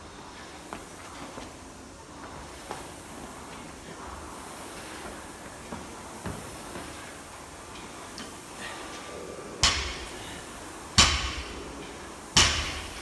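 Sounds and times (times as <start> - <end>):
barbell thudding on rubber floor: 9.6 - 10.3, 11.0 - 11.7, 12.4 - 13.0.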